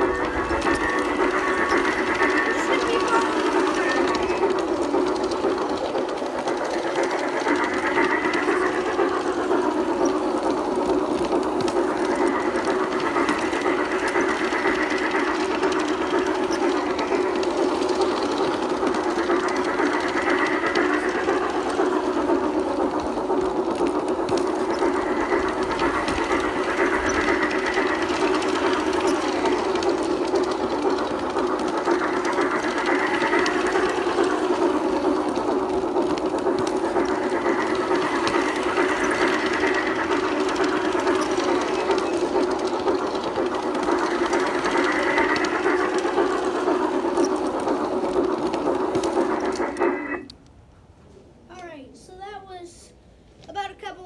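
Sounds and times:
toy train motor whirring: 0.0 - 50.3.

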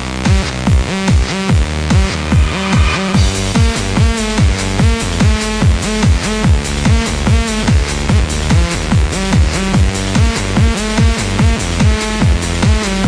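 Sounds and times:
kick drum: 0.0 - 2.6, 3.2 - 13.0
electronic dance music: 0.0 - 13.0
held synth chords: 1.5 - 4.2.

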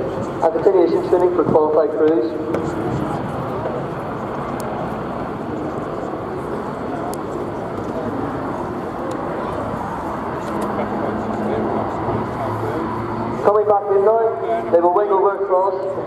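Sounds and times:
distant helicopter rotor drone: 0.0 - 16.0.

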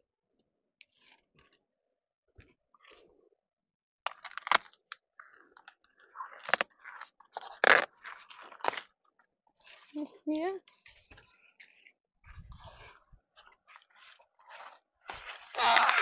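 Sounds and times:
corn stalk cracking: 4.1 - 8.9, 15.1 - 16.0.

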